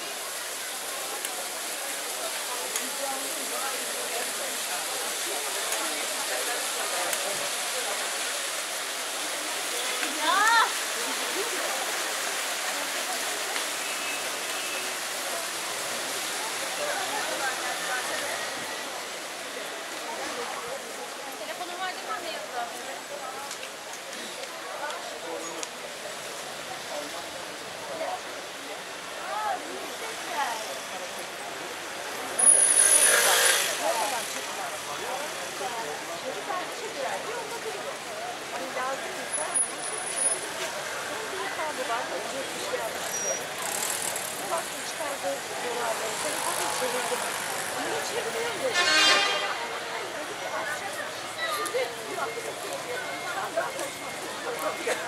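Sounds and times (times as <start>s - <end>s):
fountain water splashing: 0.0s - 48.8s, 49.4s - 55.0s
chatter of passers-by: 0.0s - 55.0s
street traffic: 0.0s - 55.0s.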